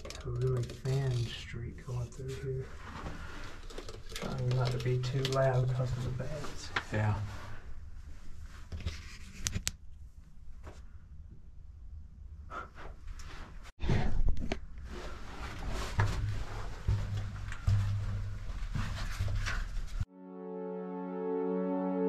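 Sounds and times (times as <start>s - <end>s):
scuffs and small knocks: 14.9s - 20.1s
footsteps on dirt floor: 15.3s - 20.0s.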